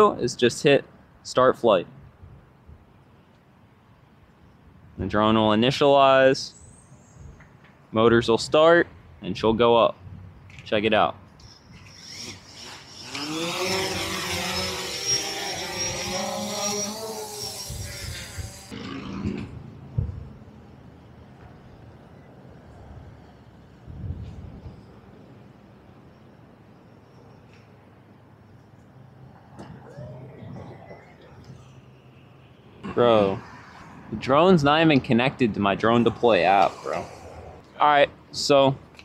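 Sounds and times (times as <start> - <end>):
drone motors buzzing whine: 11.4 - 20.4, 24.4 - 33.8.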